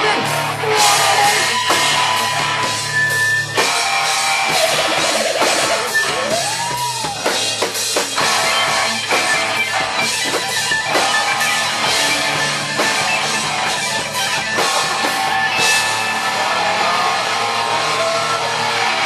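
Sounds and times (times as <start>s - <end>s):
distorted electric guitar: 0.0s - 19.0s
pounding drum kit: 0.0s - 19.0s.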